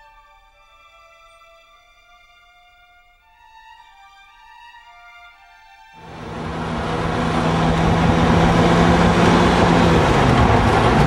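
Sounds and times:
car engine cruising: 6.0 - 11.0
wind and road rush: 6.0 - 11.0.

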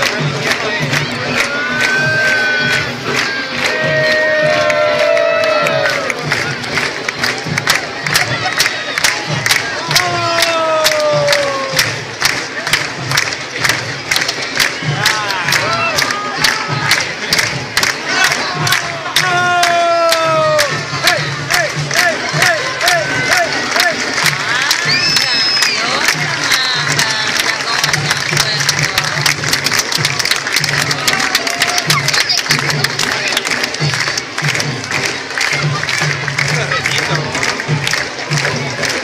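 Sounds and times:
crowd shouting: 0.0 - 12.8, 14.0 - 39.0
drums playing driving beat: 0.0 - 39.0.

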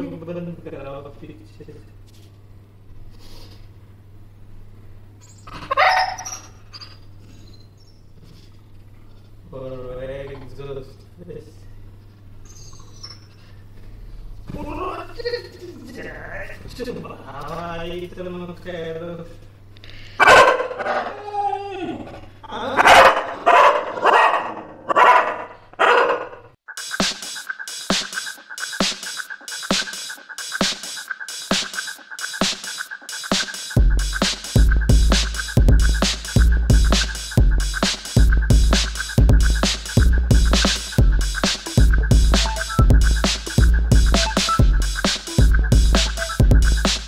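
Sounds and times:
dog crying: 5.5 - 6.6
dog barking: 5.7 - 6.4, 20.2 - 21.1, 22.8 - 26.5
music: 26.7 - 47.0.

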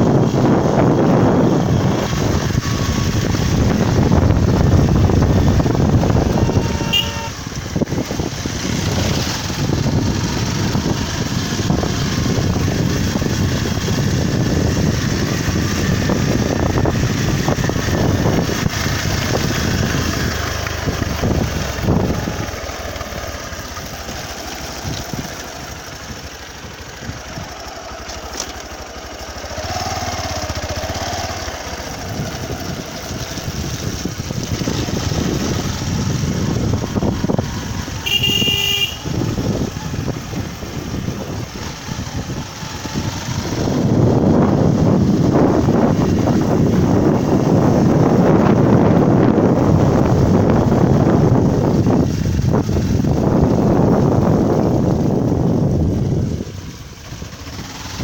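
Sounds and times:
small motorcycle engine running: 0.0 - 58.0
wind rumbling on microphone: 0.0 - 58.0.

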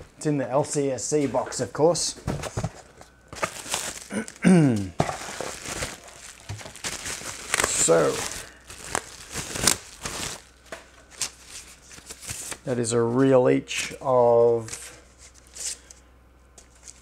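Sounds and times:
plastic packaging crinkling: 2.8 - 4.4, 5.0 - 12.7.

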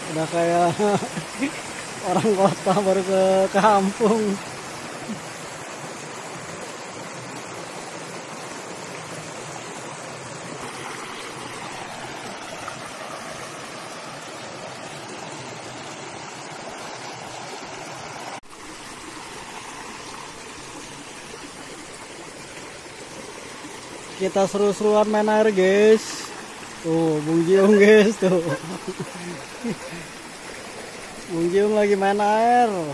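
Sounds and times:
stream rushing over rocks: 0.0 - 32.9.

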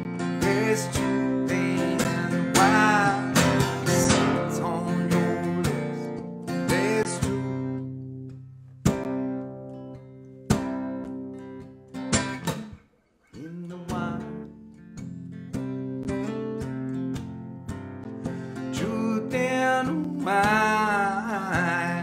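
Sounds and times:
man singing: 0.0 - 7.9, 13.3 - 14.6, 18.5 - 22.0
acoustic guitar strumming: 0.0 - 22.0.

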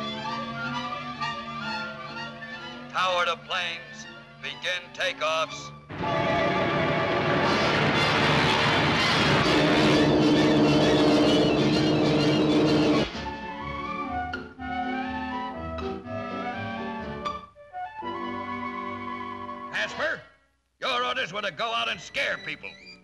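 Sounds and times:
orchestral music: 0.0 - 20.2
woodwinds and brass: 5.9 - 20.2.

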